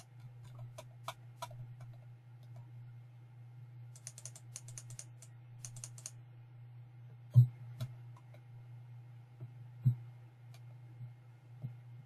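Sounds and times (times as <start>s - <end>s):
steady low hum: 0.0s - 12.0s
computer keyboard typing: 4.0s - 6.2s.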